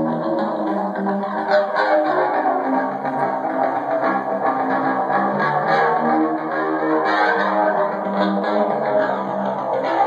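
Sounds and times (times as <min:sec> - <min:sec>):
electric guitar riff: 0:00.0 - 0:10.0.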